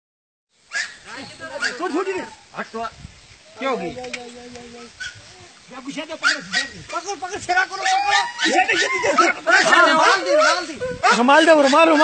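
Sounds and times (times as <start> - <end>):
men shouting excitedly: 1.0 - 2.8, 3.6 - 12.0.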